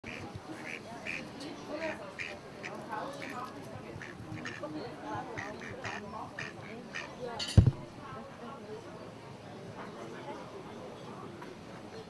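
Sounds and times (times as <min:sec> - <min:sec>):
ducks quacking: 0:00.0 - 0:07.2
murmur of voices: 0:00.0 - 0:12.0.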